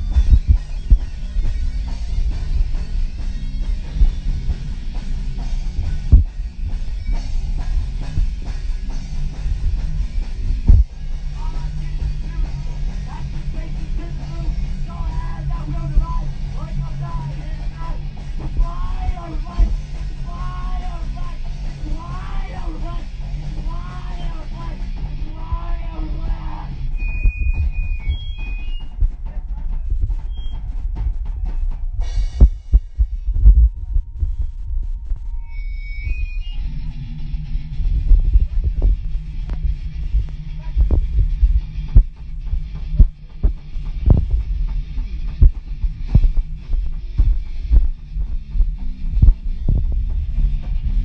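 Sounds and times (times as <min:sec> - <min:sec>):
drum hits thudding: 0:00.0 - 0:11.1, 0:27.1 - 0:34.4
drum thumps: 0:00.0 - 0:16.3, 0:17.0 - 0:21.4, 0:23.6 - 0:35.3, 0:37.8 - 0:51.0
heavy low bass: 0:00.0 - 0:51.0
person singing: 0:11.4 - 0:26.8.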